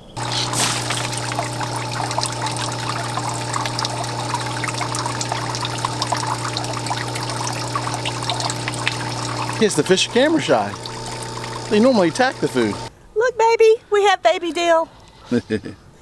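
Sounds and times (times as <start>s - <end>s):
low hum: 0.0s - 12.9s
water pouring into tank: 0.0s - 12.9s.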